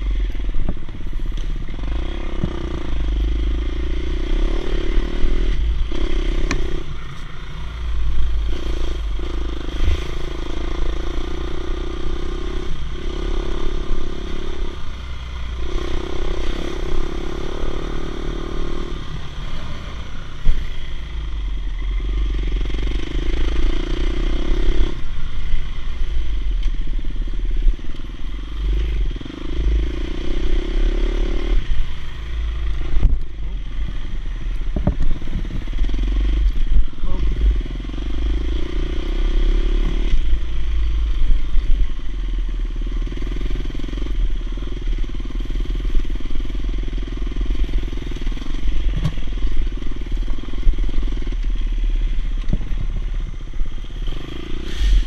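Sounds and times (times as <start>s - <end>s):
dirt bike engine: 0.0s - 55.0s
heavy low rumble: 0.0s - 55.0s.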